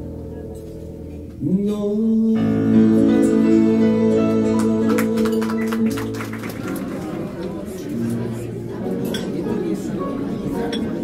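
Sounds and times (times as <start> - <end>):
acoustic band held chord: 0.0 - 11.0.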